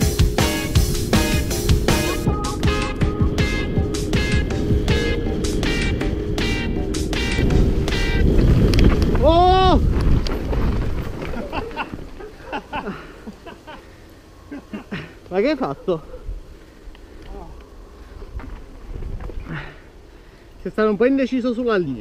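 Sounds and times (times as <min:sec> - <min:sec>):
rock music with driving beat: 0:00.0 - 0:08.4
wind and trail noise: 0:00.0 - 0:22.0.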